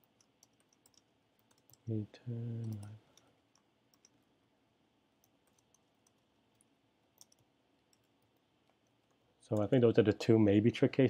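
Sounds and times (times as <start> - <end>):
computer keyboard keystrokes: 0.0 - 1.9, 5.2 - 9.7.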